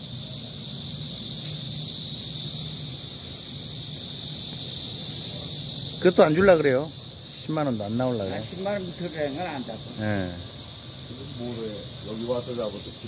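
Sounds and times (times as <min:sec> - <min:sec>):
high-pitched hiss: 0:00.0 - 0:13.0.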